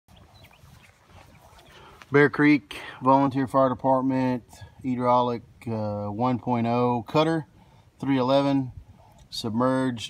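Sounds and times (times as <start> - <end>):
faint outdoor background: 0.1 - 10.0.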